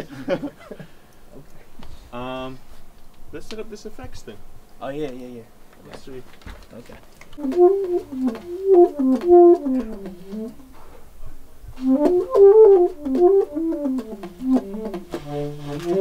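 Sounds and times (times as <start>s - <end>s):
alto saxophone melody: 7.4s - 10.8s, 11.8s - 16.0s.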